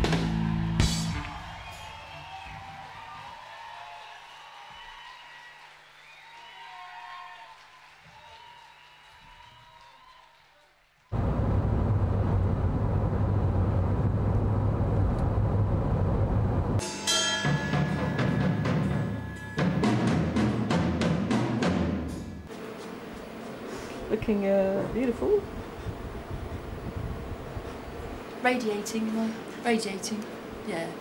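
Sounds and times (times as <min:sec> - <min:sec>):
live rock band: 0:00.0 - 0:01.3
audience cheering and whistling: 0:00.0 - 0:10.9
loud steady noise with hum: 0:11.2 - 0:16.8, 0:22.5 - 0:31.0.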